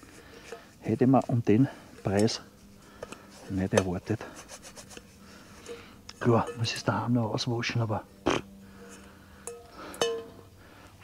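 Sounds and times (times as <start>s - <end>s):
paper towel rubbing metal pan: 3.4s - 5.2s.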